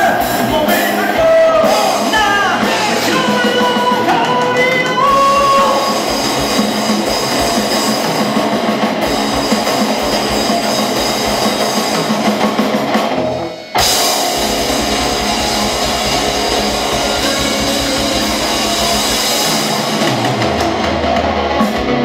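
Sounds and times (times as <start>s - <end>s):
person singing held vocal line: 0.0s - 6.0s
heavy metal band playing live: 0.0s - 22.0s.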